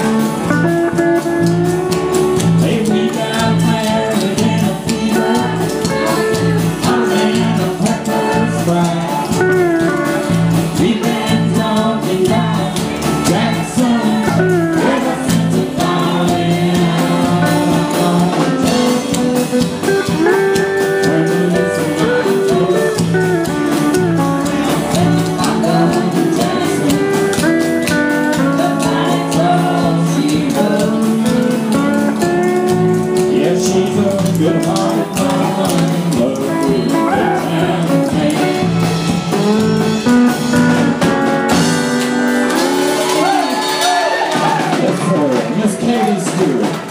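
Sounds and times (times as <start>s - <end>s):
person singing: 0.0s - 41.8s
drums: 0.0s - 46.9s
electric bass: 0.0s - 46.9s
strummed acoustic guitars: 0.0s - 46.9s.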